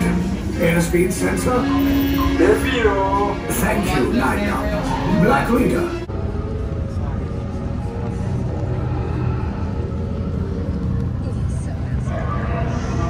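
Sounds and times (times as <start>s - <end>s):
music: 0.0s - 13.0s
deep steady rumble: 5.9s - 13.0s.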